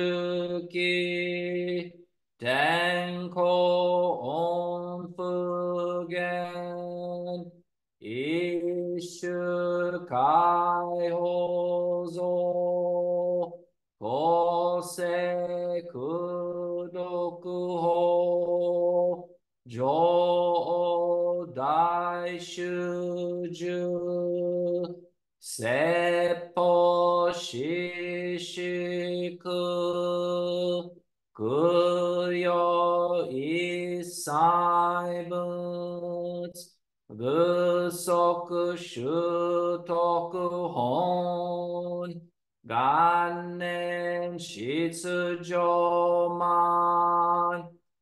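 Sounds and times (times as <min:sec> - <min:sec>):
man chanting in monotone: 0:00.0 - 0:47.8.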